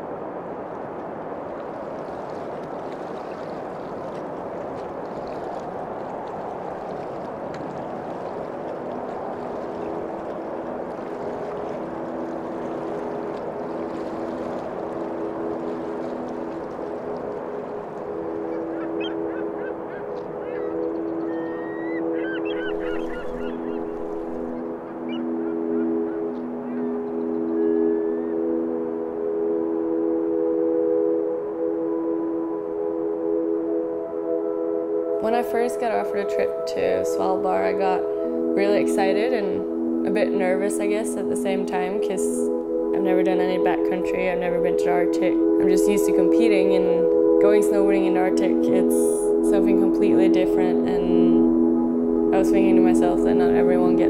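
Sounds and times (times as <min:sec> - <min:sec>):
steady wind rush: 0:00.0 - 0:54.0
bird calls: 0:18.4 - 0:28.4
low drone of held tones: 0:35.1 - 0:54.0.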